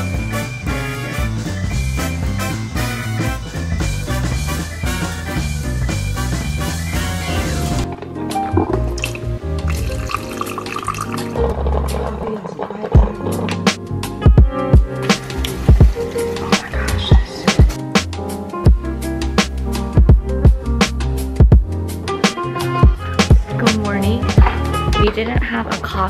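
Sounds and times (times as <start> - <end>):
upbeat background music: 0.0 - 26.0
coffee maker gurgling and dripping: 8.6 - 13.4.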